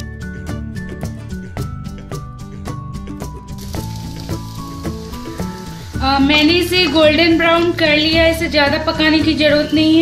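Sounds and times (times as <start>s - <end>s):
background music with held notes: 0.0s - 10.0s
oil sizzling in a pan: 3.5s - 8.1s.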